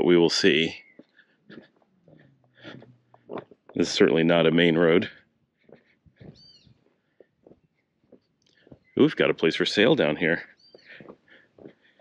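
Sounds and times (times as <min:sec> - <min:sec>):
footsteps on cobblestones: 0:00.0 - 0:12.0
high-pitched chirp: 0:06.3 - 0:06.8.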